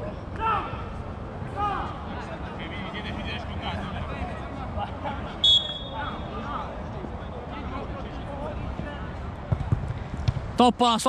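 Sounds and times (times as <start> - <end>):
distant players calling: 0.0 - 10.0
shrill whistle blast: 5.4 - 6.0.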